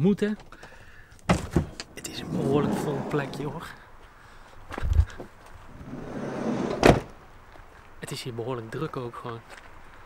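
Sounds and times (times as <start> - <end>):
dull thump: 1.3 - 2.0
door slamming shut: 1.3 - 3.2, 6.6 - 7.1
sliding door rumbling along track: 1.6 - 3.7, 5.7 - 7.1.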